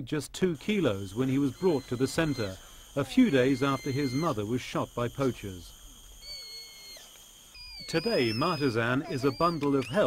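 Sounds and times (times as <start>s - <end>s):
baby orangutan squeaky calls: 1.2s - 4.5s, 6.1s - 10.0s.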